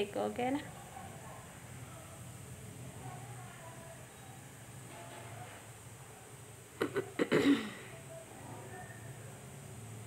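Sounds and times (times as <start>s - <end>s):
person coughing: 6.8s - 7.9s.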